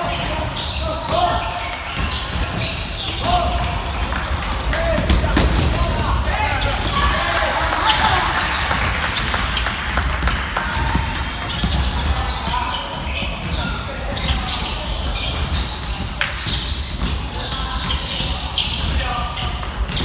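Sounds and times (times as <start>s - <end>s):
players calling out: 0.0s - 15.7s
basketballs bouncing on wooden floor: 0.0s - 20.0s.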